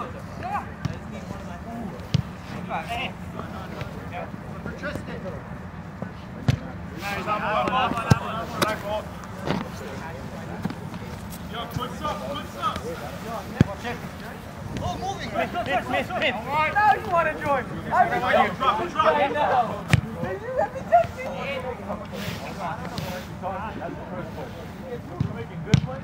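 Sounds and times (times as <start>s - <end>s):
soccer ball kick thumps: 2.0s - 2.4s, 7.9s - 8.8s, 25.1s - 26.0s
players shouting: 7.0s - 22.2s.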